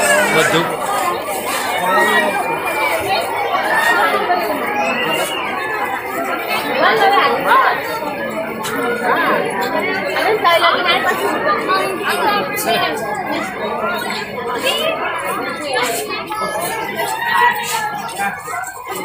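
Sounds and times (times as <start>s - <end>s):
crowd chattering: 0.0s - 19.0s.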